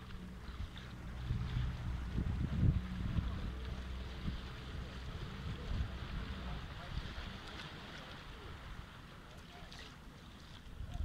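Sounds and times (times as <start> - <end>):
wind buffeting microphone: 0.0 - 7.8
faint distant voices: 2.1 - 11.0.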